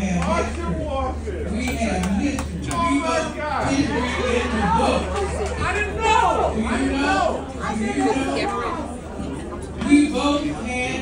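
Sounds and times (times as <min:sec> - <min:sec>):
people chattering: 0:00.0 - 0:11.0
steady low hum: 0:00.0 - 0:11.0.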